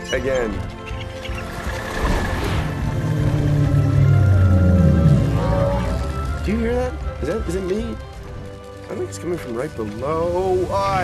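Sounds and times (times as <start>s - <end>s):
film score with held notes: 0.0s - 11.0s.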